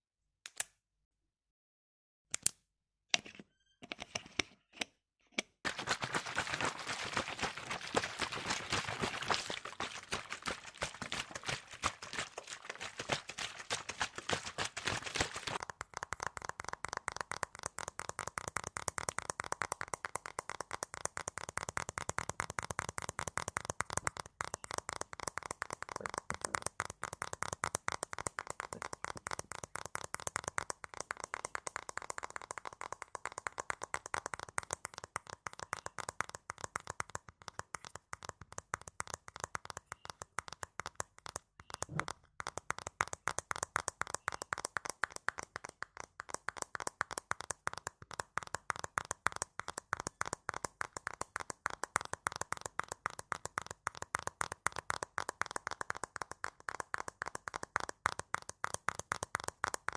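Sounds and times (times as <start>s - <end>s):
fingertips tapping on microphone: 5.6s - 59.9s.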